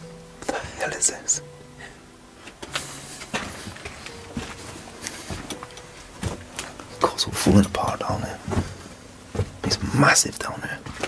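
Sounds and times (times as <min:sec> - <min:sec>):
footsteps on stone stairs: 0:02.7 - 0:06.8, 0:08.4 - 0:09.9.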